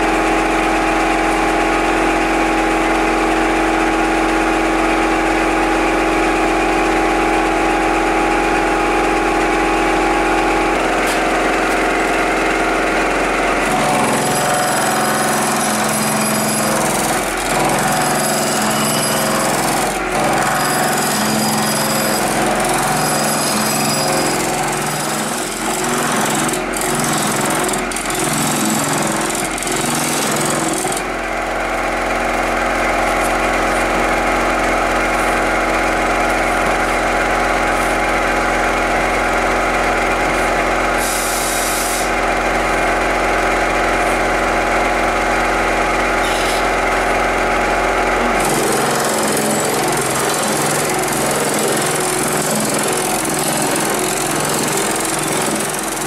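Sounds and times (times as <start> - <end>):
metal-forming machine hammering: 10.2 - 31.3, 48.1 - 56.0.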